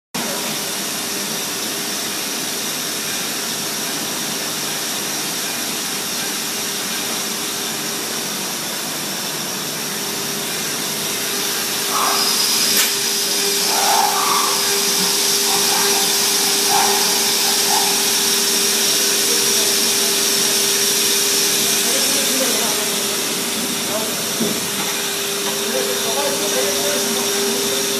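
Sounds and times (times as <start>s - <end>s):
milling machine whine: 0.2s - 27.9s.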